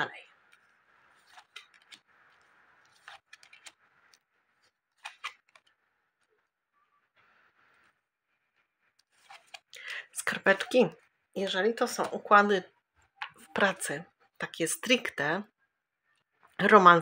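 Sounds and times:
cards sliding and rustling: 0.5 - 5.8, 9.0 - 9.7.

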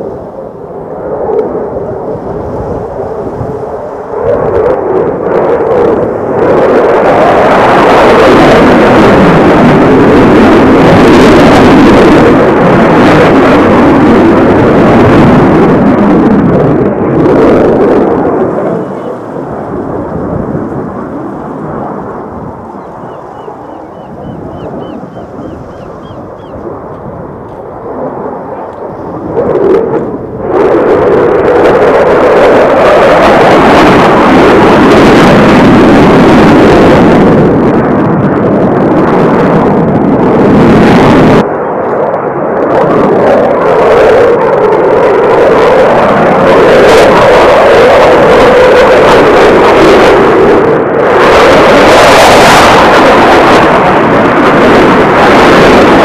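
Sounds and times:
jet engines roaring: 0.0 - 56.0.

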